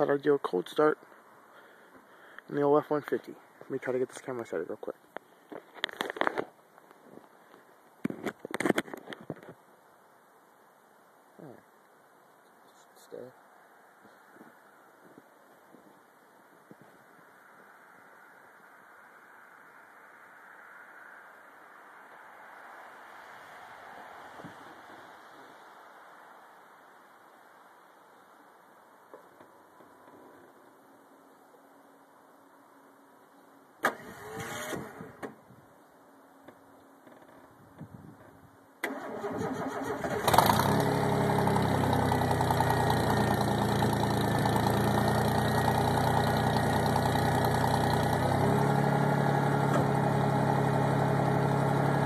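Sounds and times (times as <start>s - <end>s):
starter motor whirring: 33.8s - 35.0s, 38.8s - 45.7s.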